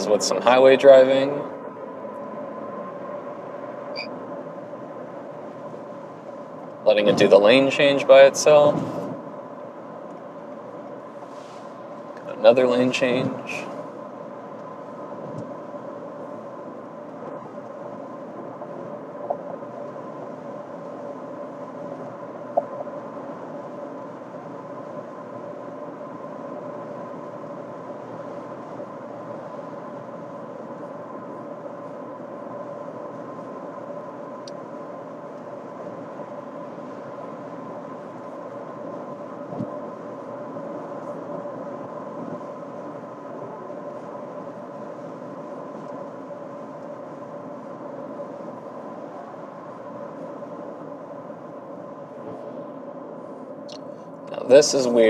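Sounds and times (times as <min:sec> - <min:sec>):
even hum: 0:00.0 - 0:55.0
road and tyre noise in car cabin: 0:00.0 - 0:55.0.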